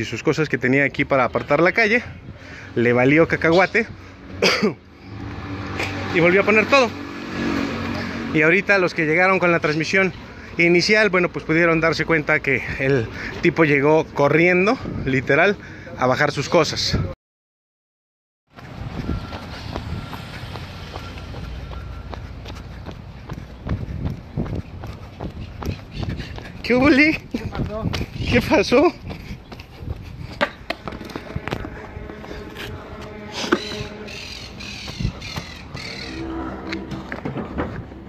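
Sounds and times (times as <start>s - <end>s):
brisk footsteps on pavement: 18.5s - 38.0s
harsh crow-like bird calls: 33.2s - 36.9s.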